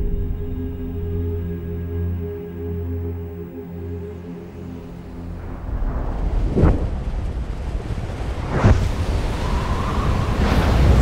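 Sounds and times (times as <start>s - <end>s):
deep rushing wind and rumble: 0.0s - 2.7s, 4.5s - 11.0s
faint held tone: 0.0s - 3.9s.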